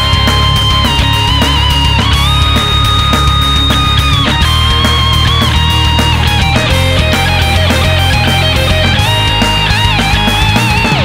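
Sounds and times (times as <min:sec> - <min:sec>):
drums and bass: 0:00.0 - 0:11.0
electric guitar sliding down: 0:00.0 - 0:11.0.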